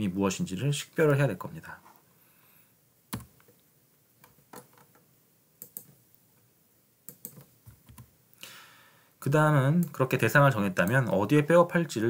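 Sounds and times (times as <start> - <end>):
computer input clicks: 5.6 - 6.0.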